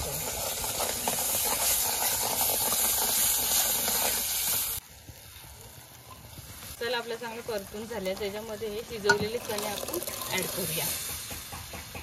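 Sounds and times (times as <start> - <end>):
paste sizzling in hot oil: 0.0 - 12.0.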